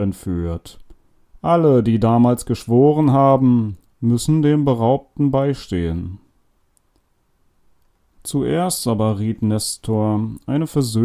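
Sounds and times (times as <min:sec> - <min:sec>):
narrator speaking: 0:00.0 - 0:06.3, 0:08.2 - 0:11.0.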